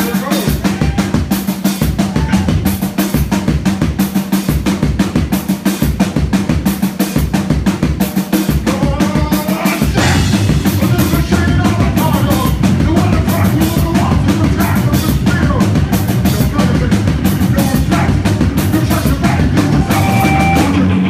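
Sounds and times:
drum kit hits: 0.0 - 21.0
heavy rock band playing: 0.0 - 21.0.

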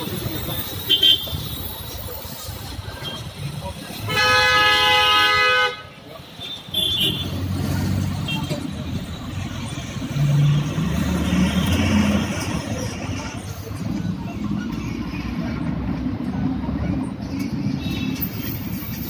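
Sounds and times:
street traffic rumble: 0.0 - 19.0.

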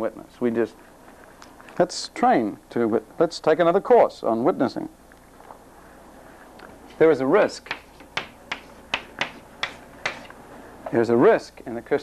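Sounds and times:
chalk tapping and scraping: 7.6 - 10.4.

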